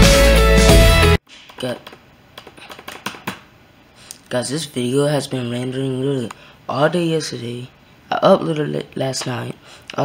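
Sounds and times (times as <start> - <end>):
background music: 0.0 - 1.2
laptop keys clicking: 1.5 - 3.4.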